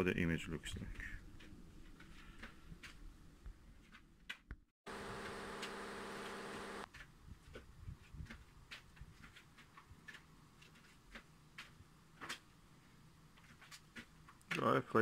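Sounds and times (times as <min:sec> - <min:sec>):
steady even-pitched buzz: 0:04.9 - 0:06.9.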